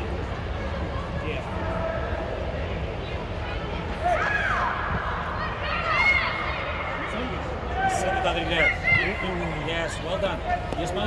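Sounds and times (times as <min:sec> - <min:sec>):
players and spectators shouting: 0:01.0 - 0:11.0.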